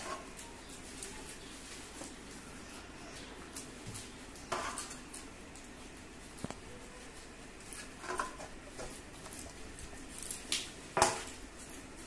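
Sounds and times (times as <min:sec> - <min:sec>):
hand scraping paste in metal bowl: 0:00.0 - 0:00.4, 0:04.5 - 0:05.0.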